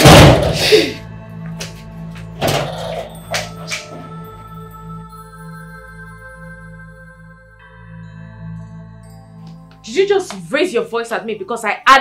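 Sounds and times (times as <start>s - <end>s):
loud bang: 0.0s - 0.6s
background music: 0.0s - 12.0s.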